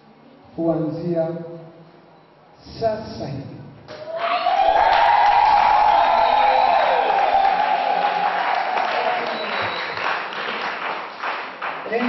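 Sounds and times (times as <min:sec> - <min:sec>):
long high cry: 0:04.0 - 0:09.6
congregation clapping and cheering: 0:04.0 - 0:12.0.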